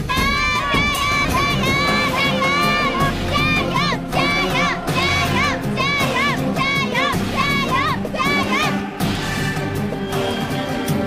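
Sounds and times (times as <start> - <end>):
music with high voice-like melody: 0.5 - 11.0.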